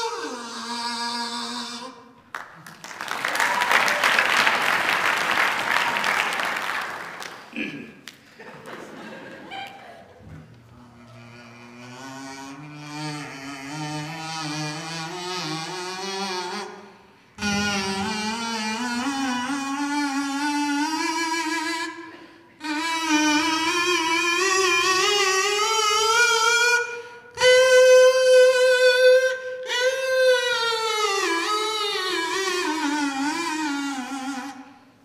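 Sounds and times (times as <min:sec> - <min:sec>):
harmonica playing slow melody: 0:00.0 - 0:02.4, 0:10.6 - 0:35.0.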